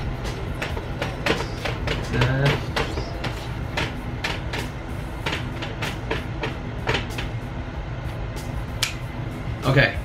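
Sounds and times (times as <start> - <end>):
low room rumble: 0.0 - 10.0
marker squeaking on whiteboard: 1.1 - 3.5.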